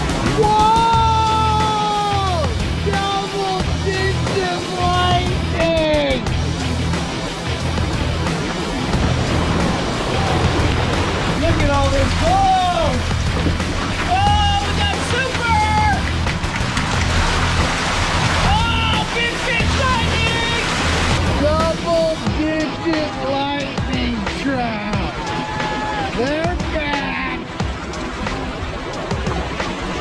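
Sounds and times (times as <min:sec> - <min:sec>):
water rushing down a chute: 0:00.0 - 0:30.0
music with repeating bass line: 0:02.2 - 0:03.0, 0:03.6 - 0:22.6.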